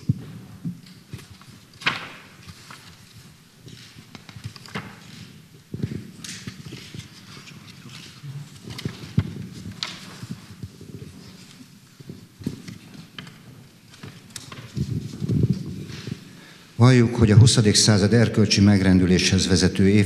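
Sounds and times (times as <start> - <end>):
audience shifting on wooden chairs: 0.0 - 17.4.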